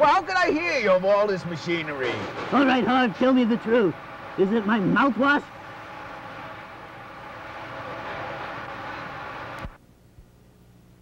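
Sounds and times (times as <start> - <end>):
printing press machinery running: 0.0 - 9.8
faint low hum: 0.0 - 11.0.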